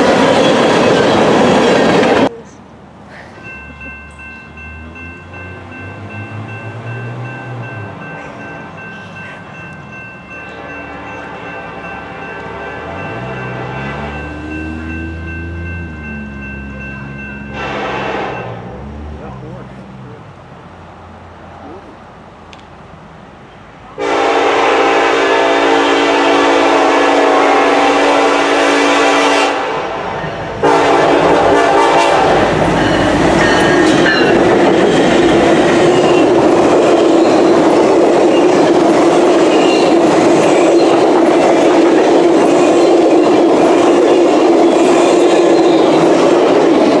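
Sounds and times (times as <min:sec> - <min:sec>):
train rushing past: 0:00.0 - 0:02.4, 0:03.0 - 0:47.0
locomotive horn: 0:10.6 - 0:14.9, 0:17.5 - 0:19.1, 0:24.0 - 0:32.9.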